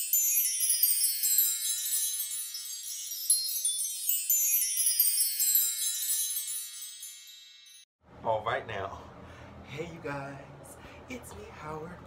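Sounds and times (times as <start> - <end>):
high chime tones ringing: 0.0 - 7.9.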